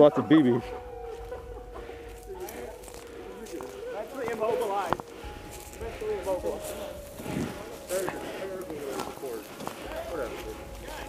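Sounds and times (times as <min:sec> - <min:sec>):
indistinct voices: 0:00.0 - 0:11.0
footsteps on forest floor: 0:00.5 - 0:11.0.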